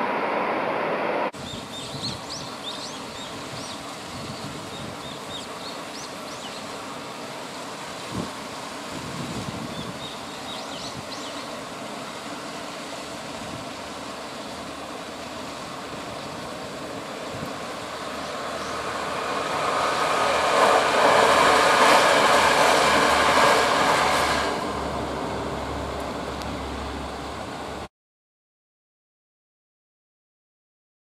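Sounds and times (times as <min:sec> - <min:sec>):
diesel train passing: 0:00.0 - 0:27.9
steady rain hiss: 0:00.0 - 0:27.9.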